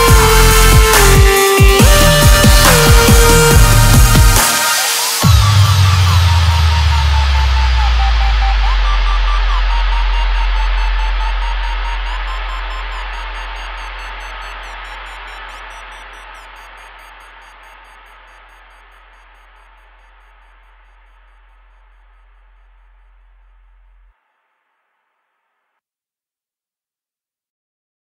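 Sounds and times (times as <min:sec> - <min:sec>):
low hum: 0:05.2 - 0:24.1.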